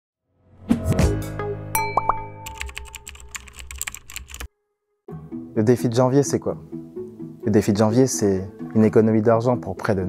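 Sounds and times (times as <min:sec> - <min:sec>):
short rising chime: 0:01.8 - 0:02.9
keyboard typing clicks: 0:02.4 - 0:04.5
low background music: 0:05.1 - 0:10.0.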